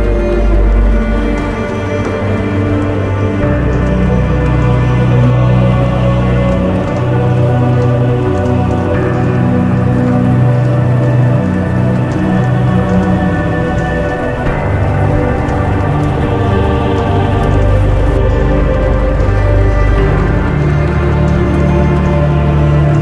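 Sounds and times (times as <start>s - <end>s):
rain pattering: 0.0s - 23.0s
slow ambient music: 0.0s - 23.0s.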